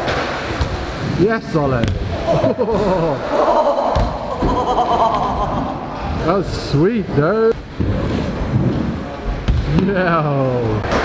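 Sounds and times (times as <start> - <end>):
bike tyres rolling on plywood ramps: 7.6 - 9.9.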